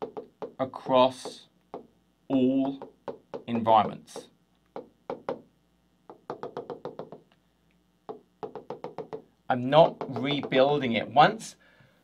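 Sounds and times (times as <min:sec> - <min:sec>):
pen tapping on glass screen: 0:00.0 - 0:05.5, 0:06.1 - 0:07.3, 0:08.1 - 0:10.7.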